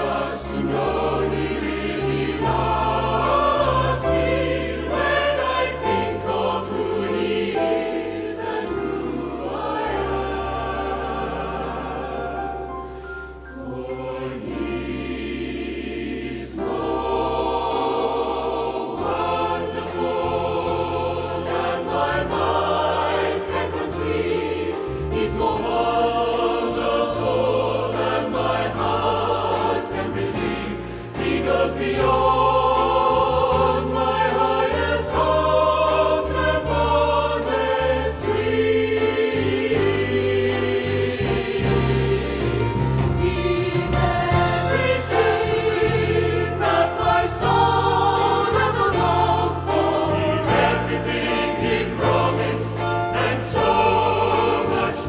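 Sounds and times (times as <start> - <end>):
choir singing in harmony: 0.0 - 55.0.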